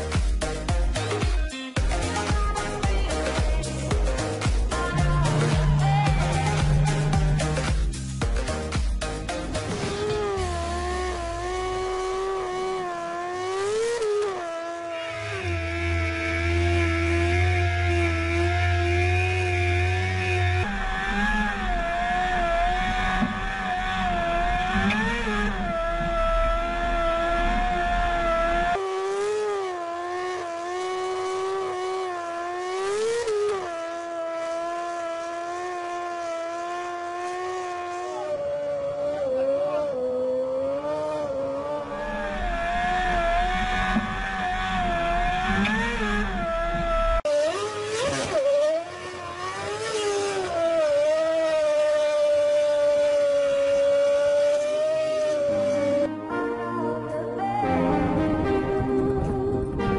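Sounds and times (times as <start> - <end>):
racing car engine high revs: 2.0 - 56.1.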